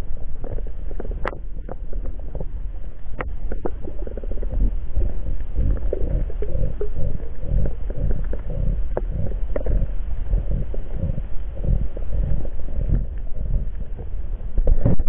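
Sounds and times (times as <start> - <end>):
underwater rumble of moving water: 0.0 - 15.0.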